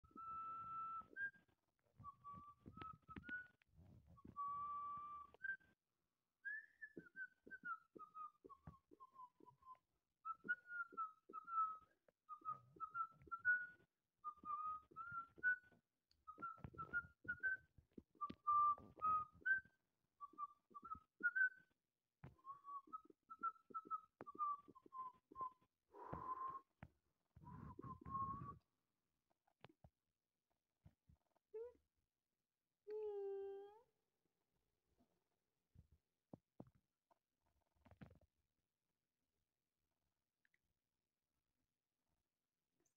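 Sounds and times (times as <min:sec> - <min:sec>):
person whistling a tune: 0:00.1 - 0:03.6, 0:04.2 - 0:05.8, 0:06.4 - 0:21.7, 0:22.4 - 0:26.8, 0:27.4 - 0:28.7.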